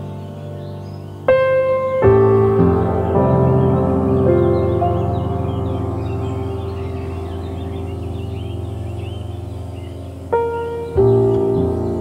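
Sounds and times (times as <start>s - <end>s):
birds chirping: 0.0s - 12.0s
held piano chord: 0.0s - 12.0s.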